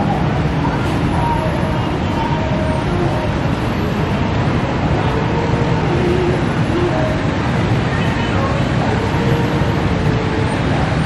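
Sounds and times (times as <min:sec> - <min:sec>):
city traffic noise: 0:00.0 - 0:11.0.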